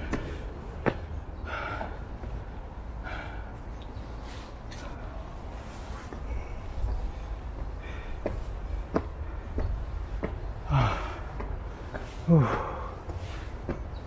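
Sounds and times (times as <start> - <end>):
footsteps on stone stairs: 0.0 - 14.0
person breathing out heavily: 1.4 - 13.7.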